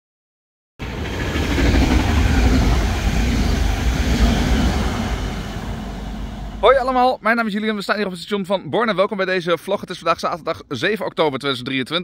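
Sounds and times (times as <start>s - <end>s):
train passing: 0.8s - 7.2s.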